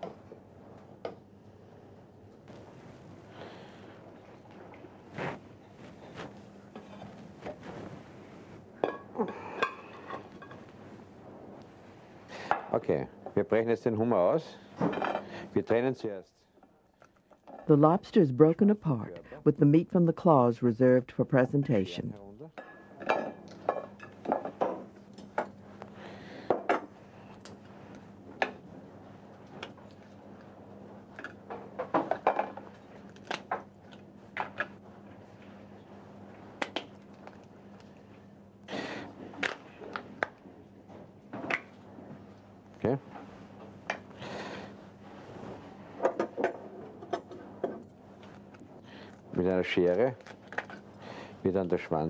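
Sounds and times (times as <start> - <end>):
faint low hum: 0.0 - 52.0.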